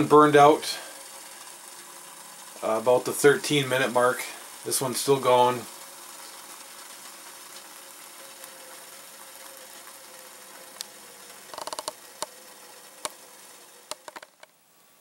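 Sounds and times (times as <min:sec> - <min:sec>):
alcohol stove hissing: 0:00.0 - 0:15.0
sharp clicks and ticks: 0:10.8 - 0:12.4, 0:13.0 - 0:13.2, 0:13.8 - 0:14.5.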